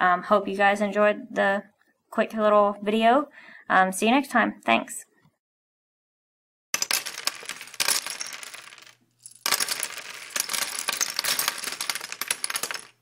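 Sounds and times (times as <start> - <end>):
small hard objects clinking: 6.8 - 13.0.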